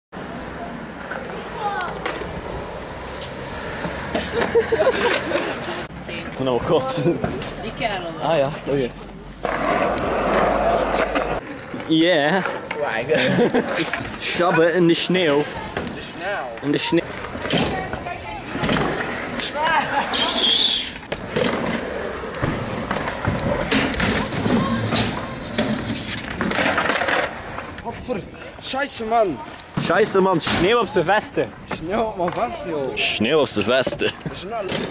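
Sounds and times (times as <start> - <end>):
skateboard wheels rolling on concrete: 0.1 - 34.9
skateboards clacking on ground: 0.2 - 34.9
short high squeal: 20.1 - 21.0.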